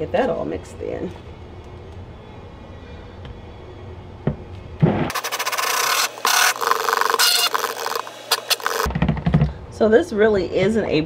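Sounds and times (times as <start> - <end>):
stick blender running: 5.1 - 8.9.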